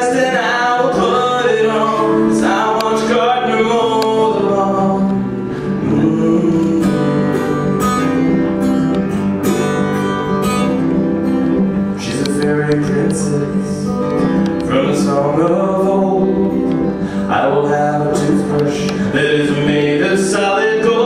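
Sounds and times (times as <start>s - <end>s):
man singing: 0.0s - 8.7s, 11.9s - 21.0s
acoustic guitar strumming: 0.0s - 21.0s.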